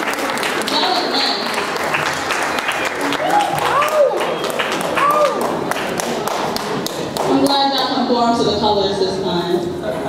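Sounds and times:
applause in a large hall: 0:00.0 - 0:07.9.

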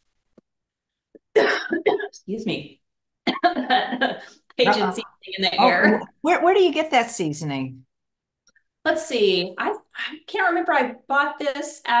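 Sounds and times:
woman coughing: 0:01.2 - 0:02.2, 0:03.2 - 0:03.7.

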